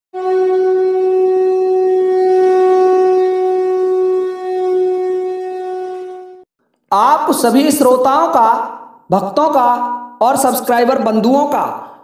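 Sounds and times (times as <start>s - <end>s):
conch shell blown: 0.1s - 6.5s.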